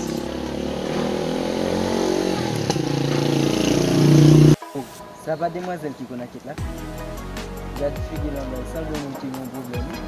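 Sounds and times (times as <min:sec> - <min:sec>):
vehicle engine running: 0:00.0 - 0:04.6.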